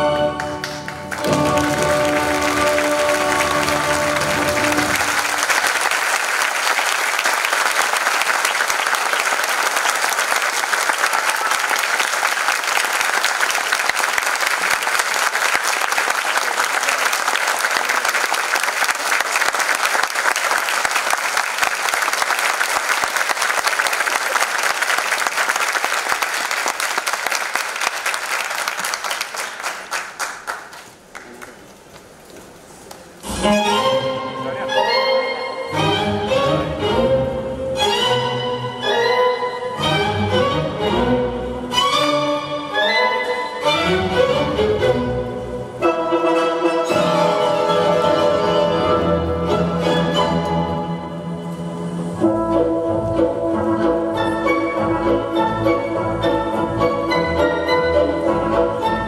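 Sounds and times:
orchestral music: 0.0s - 6.8s, 33.2s - 59.0s
audience applauding: 0.4s - 32.2s.

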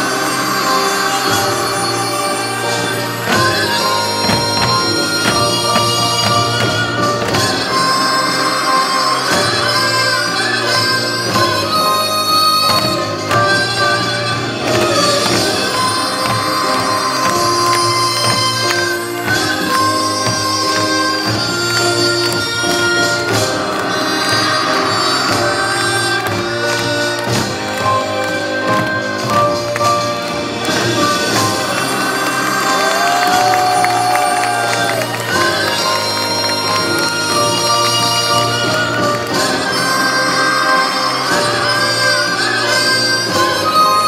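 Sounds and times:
drumming and percussion: 0.0s - 44.0s
wind instrument melody: 0.0s - 44.0s.

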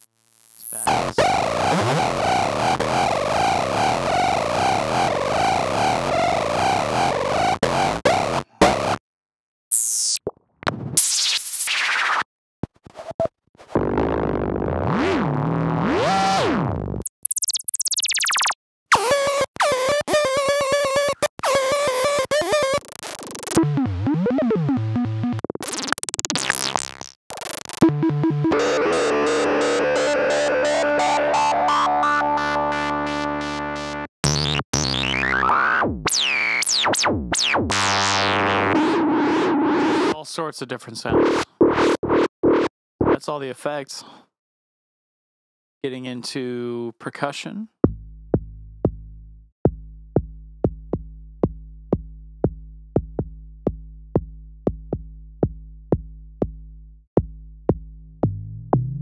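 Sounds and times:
buzzy synthesizer held tone: 0.6s - 7.2s, 27.8s - 40.2s
synthesizer pitch sweeps: 27.9s - 34.1s.

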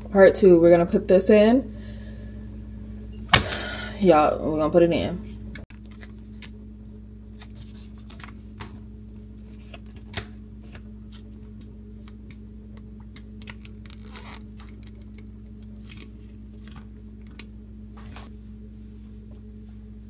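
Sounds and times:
steady low hum: 0.0s - 20.0s
plastic pouch crinkling: 13.1s - 17.4s.

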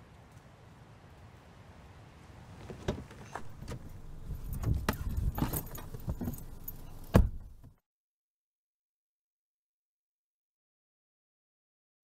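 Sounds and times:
person climbing into car seat: 2.6s - 7.8s
car door slamming: 2.8s - 7.7s
car door latch click: 2.9s - 7.7s.

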